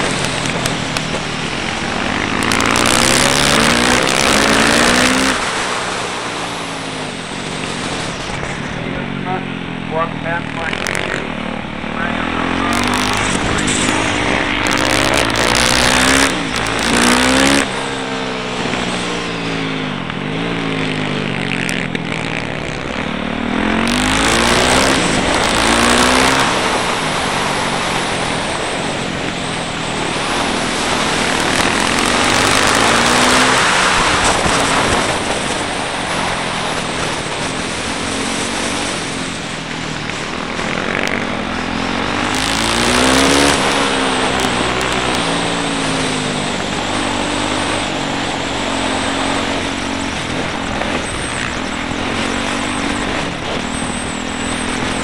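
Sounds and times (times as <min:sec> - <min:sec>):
wind rushing over microphone: 0:00.0 - 0:21.2, 0:22.8 - 0:55.0
motorcycle engine revving: 0:00.0 - 0:55.0.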